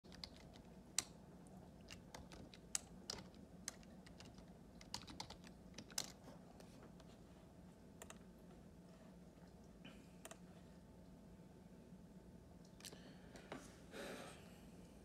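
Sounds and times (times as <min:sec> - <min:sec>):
faint room hum: 0:00.0 - 0:15.0
computer keyboard clicks: 0:00.1 - 0:01.2, 0:01.8 - 0:06.2, 0:08.0 - 0:08.2.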